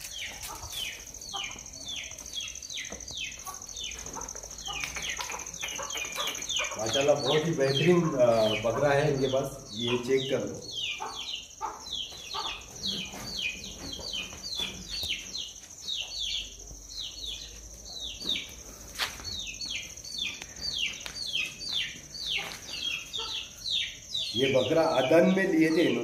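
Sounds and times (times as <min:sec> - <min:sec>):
small birds chirping: 0:00.0 - 0:26.0.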